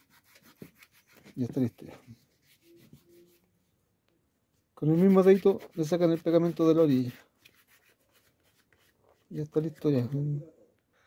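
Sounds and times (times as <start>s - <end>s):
fingers rubbing and scratching: 0.0s - 3.5s, 4.8s - 9.0s.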